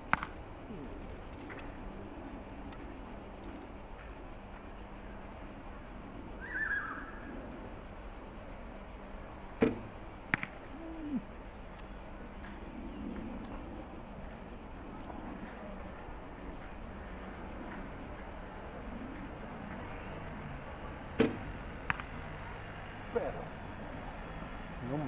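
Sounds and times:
bowstring snap: 0.1 - 0.4, 9.6 - 10.6, 21.2 - 22.1
arrow knocking into straw target: 9.6 - 10.5.

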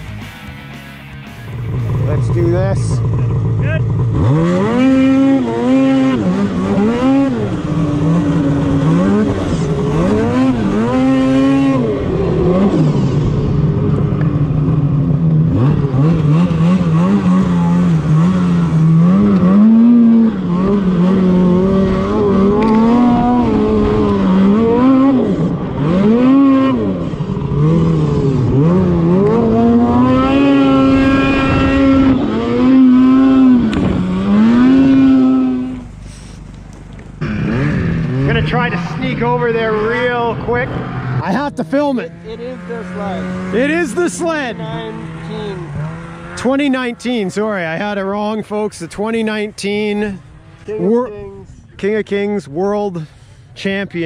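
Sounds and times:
snowmobile engine revving: 1.4 - 54.0.

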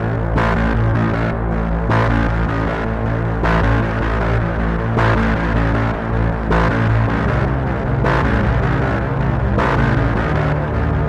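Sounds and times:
dark droning background music: 0.0 - 11.0.

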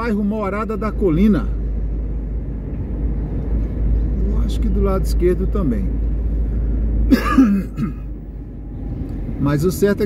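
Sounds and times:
car driving heard from inside: 0.0 - 10.0
person coughing: 7.1 - 8.1.

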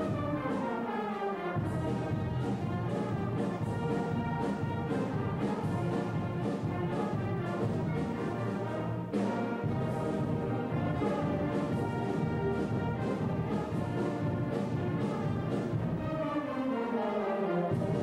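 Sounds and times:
concert band playing: 0.0 - 16.3, 17.6 - 18.0.

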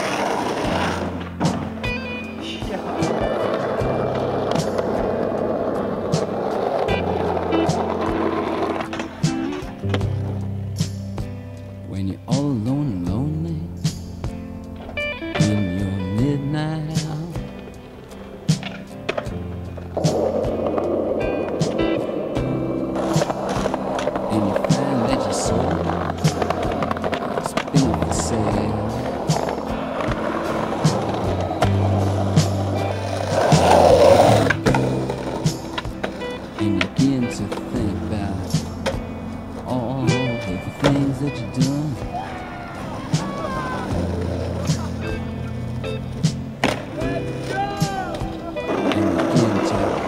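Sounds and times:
skateboard clacks: 0.0 - 10.5, 17.0 - 50.0
skateboard wheels rolling on asphalt: 0.0 - 11.9, 17.1 - 50.0
background music with bass line: 0.0 - 50.0.

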